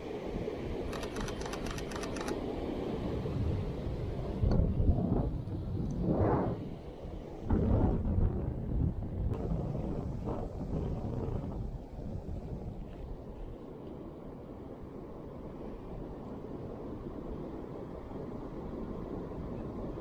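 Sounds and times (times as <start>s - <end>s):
wind buffeting microphone: 0.4s - 20.0s
rapid clicks: 0.9s - 2.4s.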